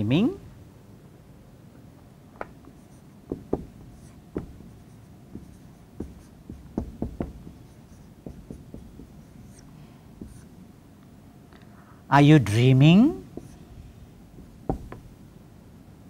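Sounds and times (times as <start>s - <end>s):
marker writing on whiteboard: 2.4s - 10.6s, 12.8s - 15.2s
pen tip tapping board: 3.3s - 9.4s, 14.4s - 15.1s.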